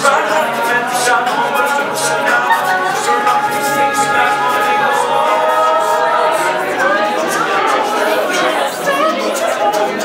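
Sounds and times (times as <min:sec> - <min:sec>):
male group singing in harmony: 0:00.0 - 0:10.0
room chatter: 0:00.0 - 0:10.0.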